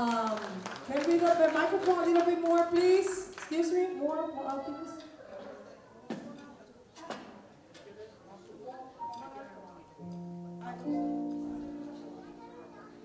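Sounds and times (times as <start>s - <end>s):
faint talk: 4.1s - 13.0s
sustained instrumental chord: 10.0s - 13.0s.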